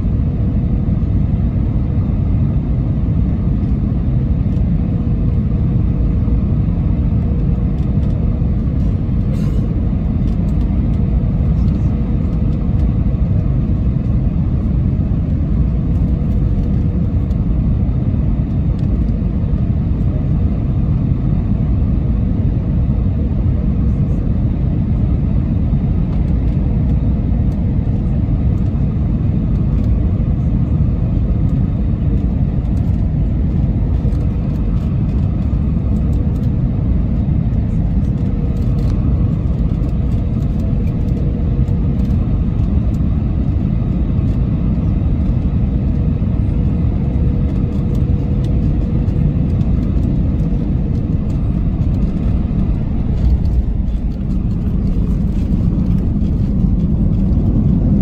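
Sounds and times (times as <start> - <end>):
jet engine and airflow rumble: 0.0 - 58.0.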